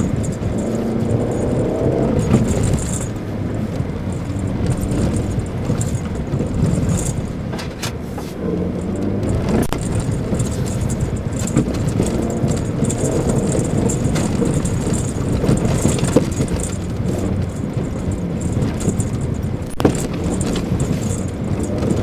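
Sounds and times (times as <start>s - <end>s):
cabin rattles and clicks: 0.0s - 8.0s, 8.8s - 22.0s
car engine pulling: 0.0s - 22.0s
tyre and road rumble: 0.0s - 22.0s.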